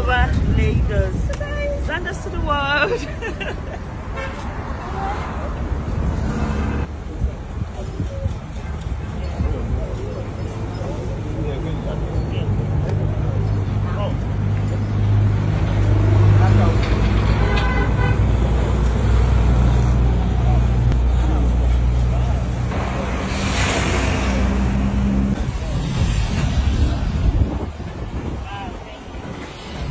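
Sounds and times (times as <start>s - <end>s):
rush of traffic noise: 0.0s - 29.9s
vehicle engine humming: 10.6s - 28.3s.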